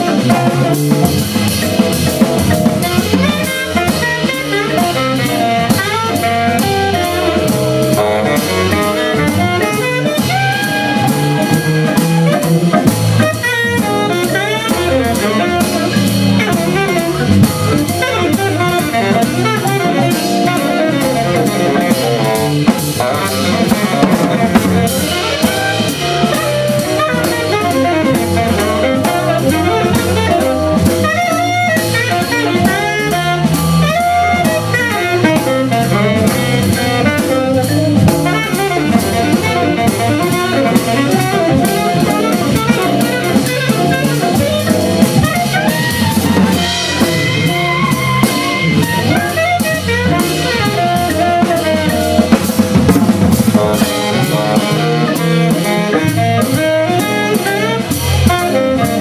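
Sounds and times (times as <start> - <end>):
drum kit: 0.0 - 59.0
tenor saxophone: 0.0 - 59.0
trombone: 0.0 - 59.0.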